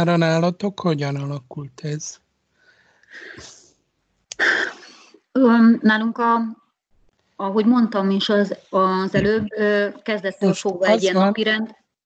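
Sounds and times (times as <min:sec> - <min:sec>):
microphone click: 0:09.2 - 0:09.6.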